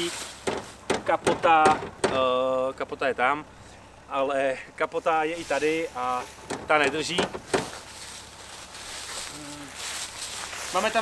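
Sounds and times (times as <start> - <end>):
footsteps in dry leaves: 0.0 - 0.9, 5.3 - 6.5, 7.5 - 11.0
sharp knock: 0.4 - 2.3.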